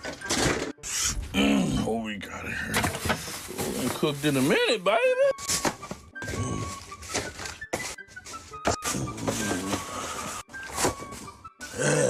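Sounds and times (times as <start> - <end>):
background music: 0.0 - 12.0.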